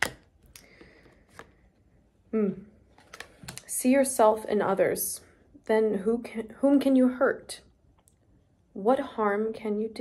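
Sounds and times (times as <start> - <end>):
cards rustling: 0.0 - 1.8.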